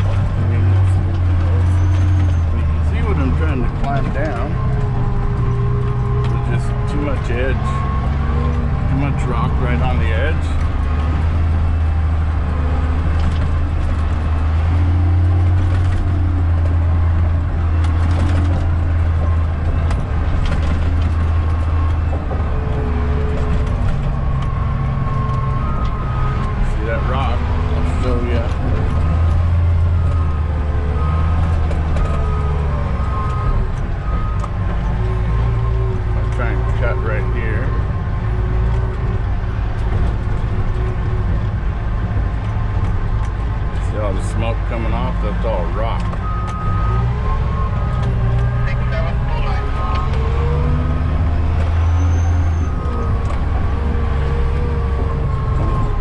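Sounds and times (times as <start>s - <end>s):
bulldozer diesel engine under load: 0.0s - 56.0s.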